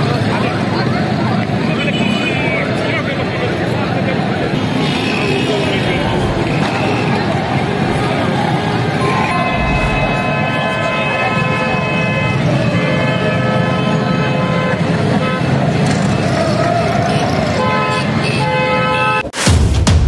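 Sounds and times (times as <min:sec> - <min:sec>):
street crowd chatter: 0:00.0 - 0:19.3
vehicle horns honking: 0:01.8 - 0:02.6, 0:09.0 - 0:19.3.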